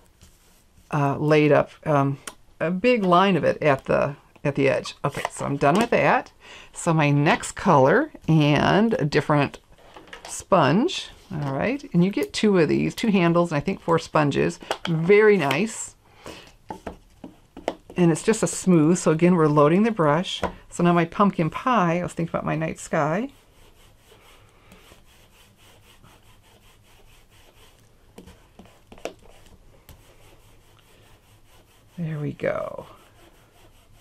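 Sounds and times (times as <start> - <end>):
sponge roller rubbing on paper: 0.2 - 0.9, 21.6 - 34.0.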